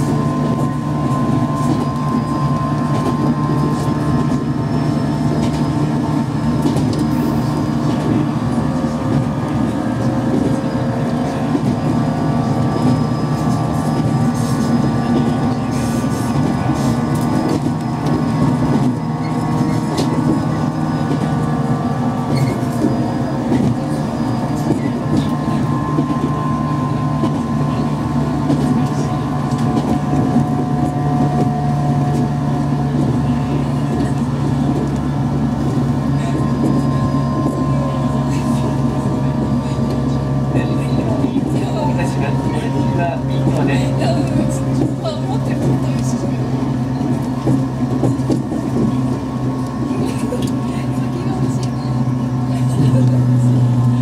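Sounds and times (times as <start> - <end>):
wheels rumbling on rail: 0.0 - 54.0.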